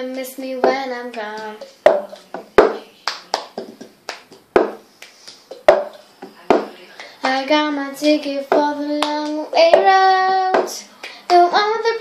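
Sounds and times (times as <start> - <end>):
hand claps: 0.1 - 7.4, 8.0 - 9.9
plastic cup knocking on table: 1.8 - 2.8, 4.6 - 4.8, 5.6 - 6.7.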